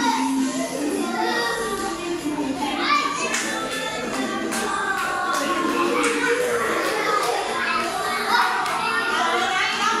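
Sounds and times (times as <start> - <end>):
children calling out and chattering: 0.0 - 10.0
children's song playing: 0.0 - 10.0.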